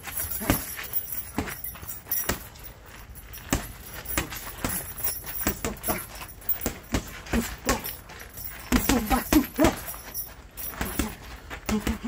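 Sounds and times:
boxing gloves slapping: 0:00.0 - 0:02.6, 0:03.3 - 0:12.0.

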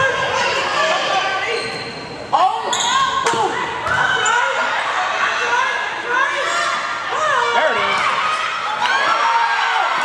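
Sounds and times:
crowd of overlapping voices: 0:00.0 - 0:10.0
volleyball impacts in a gymnasium: 0:00.0 - 0:10.0.

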